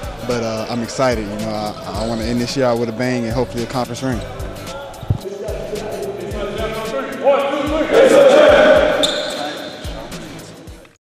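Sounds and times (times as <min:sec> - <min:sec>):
team shouting together: 0:07.2 - 0:09.0
short high squeak: 0:09.0 - 0:09.5.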